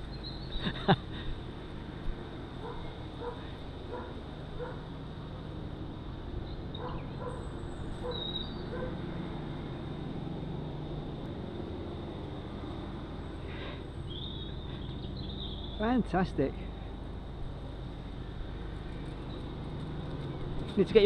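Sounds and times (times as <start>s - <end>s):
outdoor background noise: 0.0s - 21.0s
dog barking faintly: 2.6s - 4.8s.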